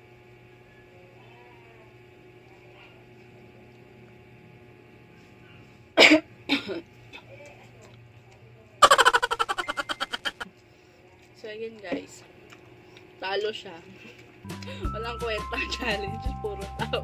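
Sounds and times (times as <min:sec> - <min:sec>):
person coughing: 0:06.0 - 0:06.8.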